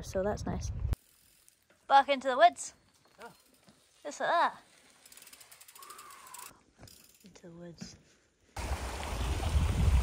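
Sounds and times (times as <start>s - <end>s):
bike rolling on dirt trail: 1.0s - 7.2s
wind buffeting microphone: 8.6s - 10.0s.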